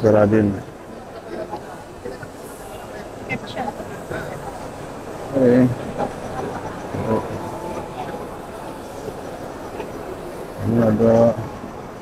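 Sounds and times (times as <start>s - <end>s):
crowded hall din: 0.0s - 12.0s
indistinct voices: 0.0s - 12.0s.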